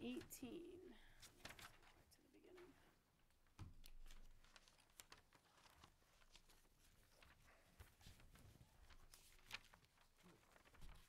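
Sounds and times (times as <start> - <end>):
paper sheets rustling: 1.2 - 2.7, 3.3 - 11.0.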